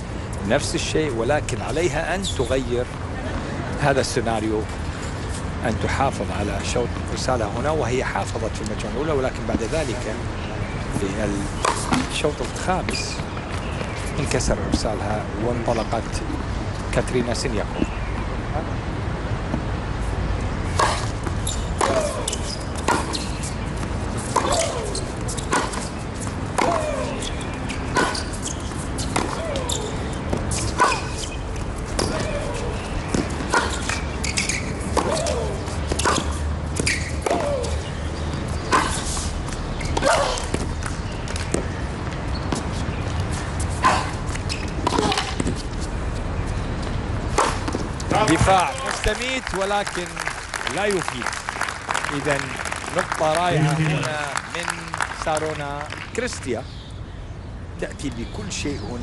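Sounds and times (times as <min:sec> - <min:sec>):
tennis ball bounces: 0:11.6 - 0:14.8, 0:20.6 - 0:43.3, 0:44.0 - 0:45.9, 0:46.8 - 0:51.0.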